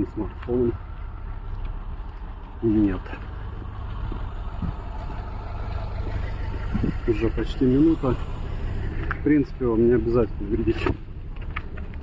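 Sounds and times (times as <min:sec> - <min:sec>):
bus engine rumbling: 0:00.0 - 0:12.0
traffic hiss on slushy road: 0:01.0 - 0:10.4.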